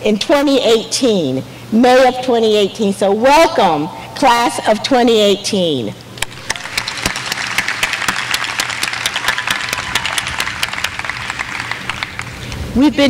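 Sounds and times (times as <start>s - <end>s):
audience applauding: 6.3s - 12.5s.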